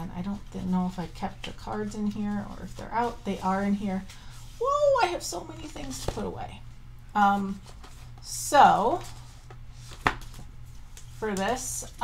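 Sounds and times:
cardboard and paper rustling: 0.3s - 6.4s, 7.5s - 12.0s.

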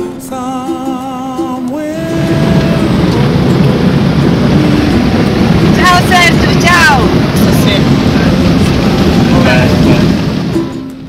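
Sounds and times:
vehicle engine and tyres rumbling: 0.8s - 11.0s.

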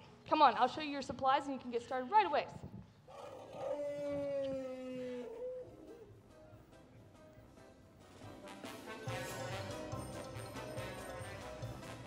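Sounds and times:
brass held notes: 8.3s - 12.0s.

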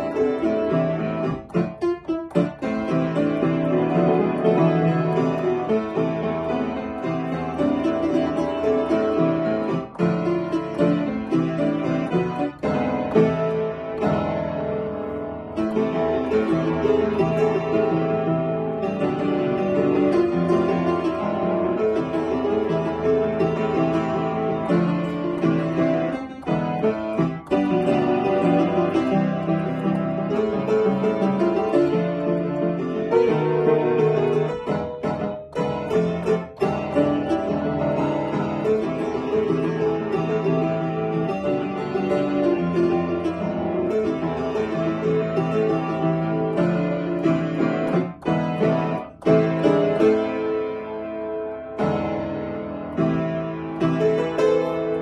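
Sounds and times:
solo piano piece: 0.0s - 55.0s.

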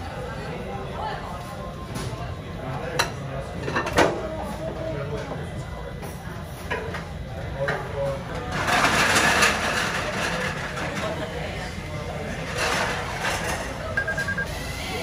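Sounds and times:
restaurant chatter and clatter: 0.0s - 15.0s
short electronic beeps: 14.0s - 14.5s.

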